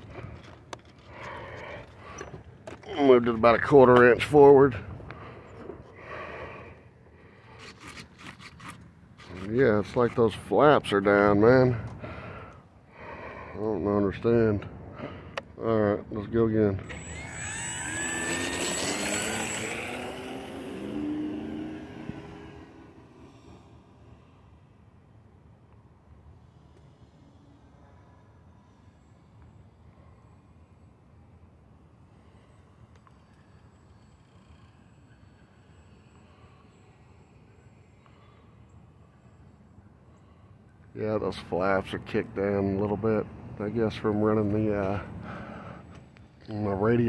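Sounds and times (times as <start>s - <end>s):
model plane motor whining: 16.8s - 23.9s, 32.3s - 38.8s.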